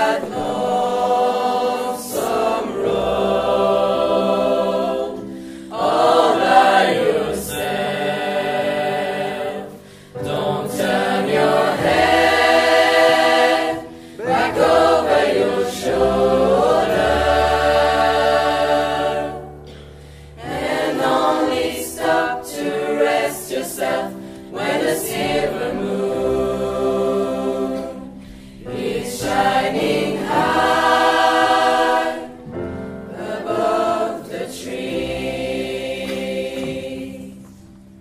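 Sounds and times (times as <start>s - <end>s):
choir singing in harmony: 0.0s - 38.0s
singers breathing: 5.2s - 5.8s, 9.7s - 10.2s, 13.8s - 14.3s, 19.6s - 20.4s, 24.2s - 24.5s, 28.1s - 28.7s.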